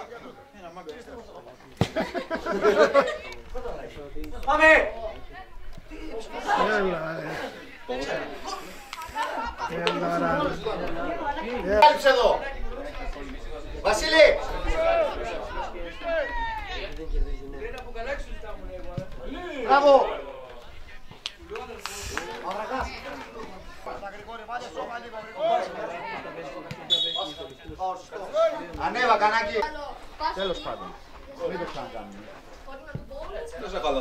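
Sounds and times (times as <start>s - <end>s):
voices chattering and calling: 0.0s - 34.0s
referee's whistle: 26.8s - 27.7s.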